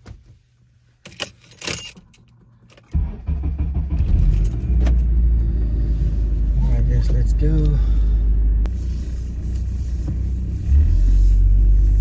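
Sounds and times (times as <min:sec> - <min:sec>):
car keys jangling: 0:01.0 - 0:02.9, 0:04.2 - 0:05.2
car engine starting and idling: 0:02.1 - 0:12.0.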